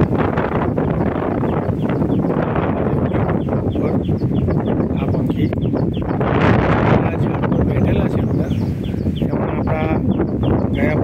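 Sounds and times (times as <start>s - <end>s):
small birds chirping: 0.0s - 11.0s
wind buffeting microphone: 0.0s - 11.0s.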